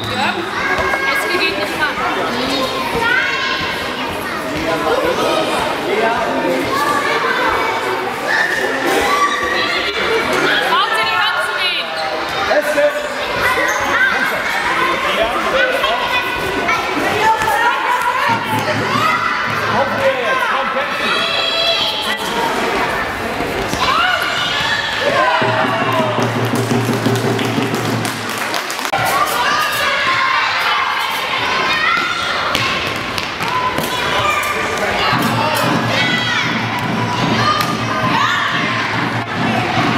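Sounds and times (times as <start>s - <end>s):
children shouting in a hall: 6.7s - 10.7s, 13.1s - 23.0s, 29.0s - 39.9s.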